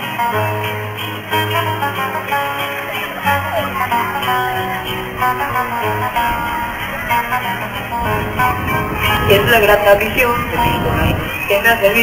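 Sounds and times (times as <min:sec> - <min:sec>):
two acoustic guitars playing: 0:00.0 - 0:12.0.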